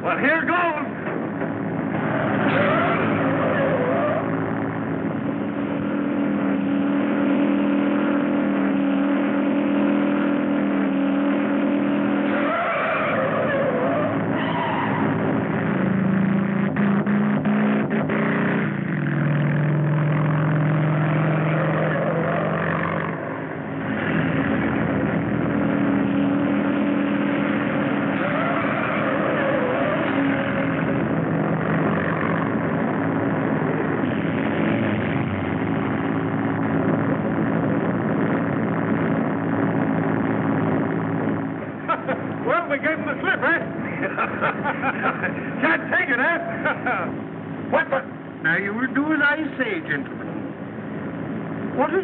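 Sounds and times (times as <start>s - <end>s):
vehicle engines droning: 0.0s - 52.0s.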